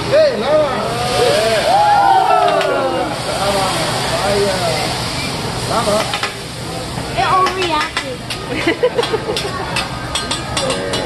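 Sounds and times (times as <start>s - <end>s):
grill flame rushing noise: 0.8s - 9.9s
diners exclaiming: 1.0s - 3.2s.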